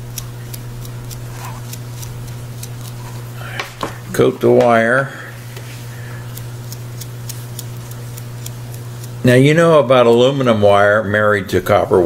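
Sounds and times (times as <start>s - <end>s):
low electrical hum: 0.0s - 12.0s
faint ticks: 5.6s - 9.3s.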